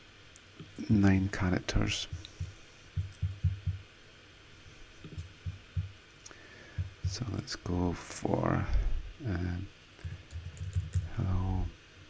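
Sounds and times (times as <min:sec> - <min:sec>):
computer keyboard taps: 0:02.1 - 0:03.8, 0:10.0 - 0:11.1.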